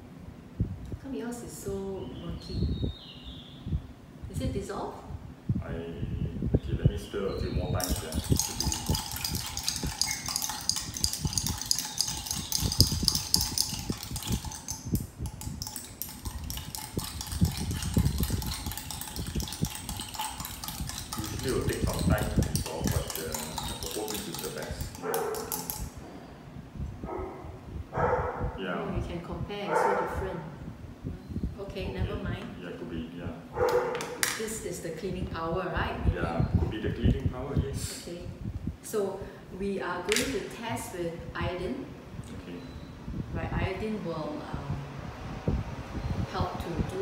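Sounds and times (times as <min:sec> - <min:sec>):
stirrers clinking against glass jars: 0:07.8 - 0:26.0.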